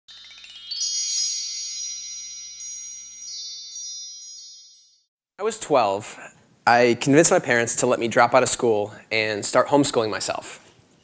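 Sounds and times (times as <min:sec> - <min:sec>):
high bell-like notes ringing: 0:00.1 - 0:05.1
rising chime sweep: 0:00.1 - 0:05.1.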